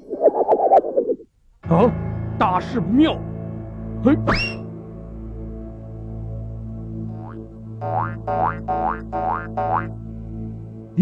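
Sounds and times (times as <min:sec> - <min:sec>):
background music: 0:01.6 - 0:11.0
cartoon rising boings: 0:07.2 - 0:09.9.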